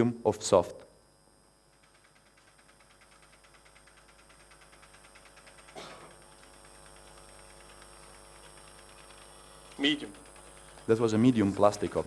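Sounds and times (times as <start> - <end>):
faint electrical hum: 0.0 - 12.0
fast even ticking: 1.6 - 12.0.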